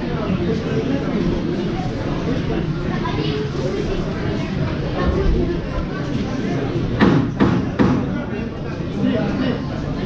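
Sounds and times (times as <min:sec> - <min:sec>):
hall chatter: 0:00.0 - 0:10.0
sharp knocks: 0:07.0 - 0:08.2.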